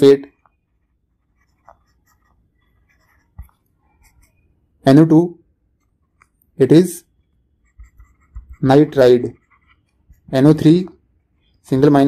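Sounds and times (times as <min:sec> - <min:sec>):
stylus tapping on tablet screen: 0:00.4 - 0:04.4, 0:07.6 - 0:08.6.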